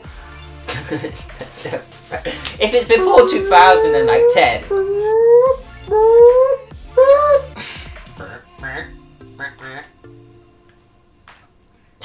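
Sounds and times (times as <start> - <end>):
voice making rising ooo sounds: 2.9 - 7.6.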